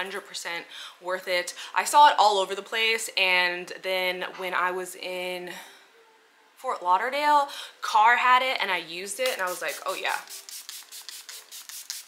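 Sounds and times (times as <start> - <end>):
pump spray bottle hissing: 9.3 - 12.0.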